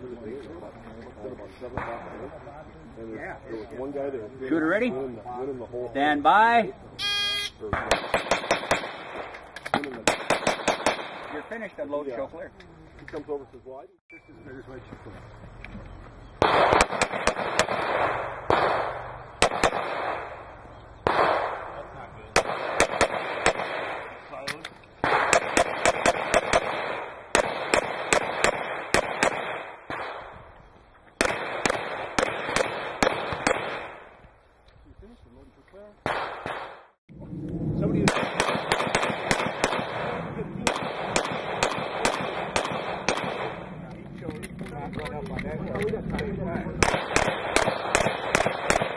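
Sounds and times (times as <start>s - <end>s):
pistol gunshots: 7.7s - 11.6s, 16.4s - 30.5s, 31.2s - 34.2s, 36.0s - 37.0s, 38.0s - 44.6s, 46.7s - 48.9s.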